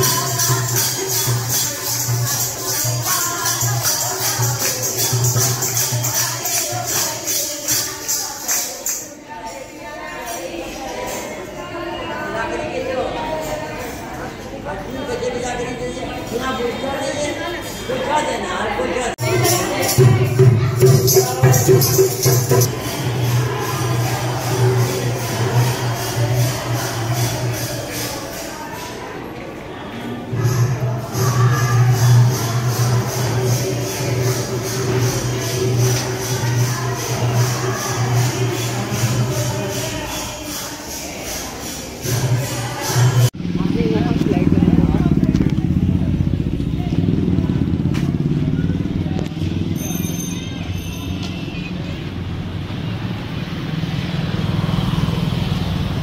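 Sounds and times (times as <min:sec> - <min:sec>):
jingling hand percussion: 0:00.0 - 0:29.4, 0:30.0 - 0:43.4, 0:49.2 - 0:52.8
motorcycle engine running: 0:43.4 - 0:50.0.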